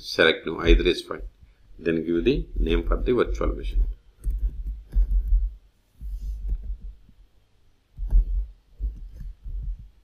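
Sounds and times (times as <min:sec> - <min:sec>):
keyboard typing thumps: 0:03.7 - 0:07.2, 0:08.0 - 0:10.0.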